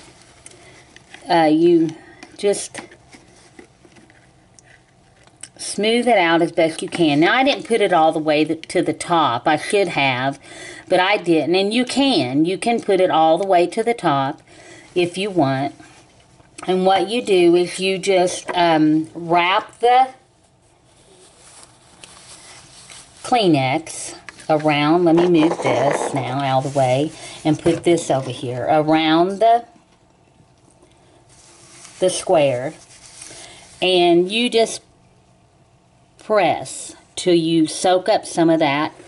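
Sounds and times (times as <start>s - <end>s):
paper tissue rustling: 20.3s - 28.7s, 31.0s - 34.2s.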